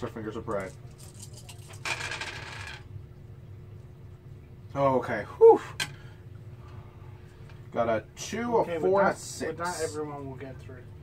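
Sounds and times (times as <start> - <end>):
dice clattering on wooden table: 0.6 - 2.8.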